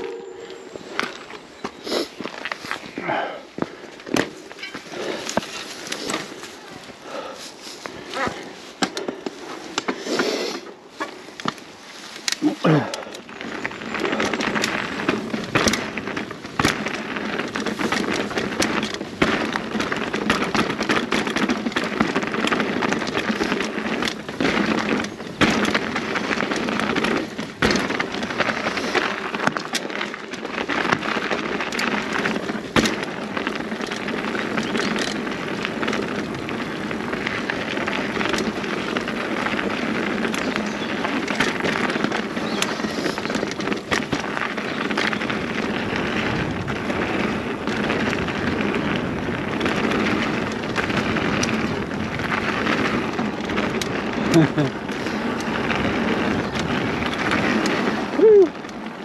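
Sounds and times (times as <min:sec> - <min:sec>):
bike tyres rolling over dirt: 0:00.0 - 0:59.0
bike knocking and rattling on rocks: 0:00.8 - 0:10.2, 0:10.9 - 0:59.0.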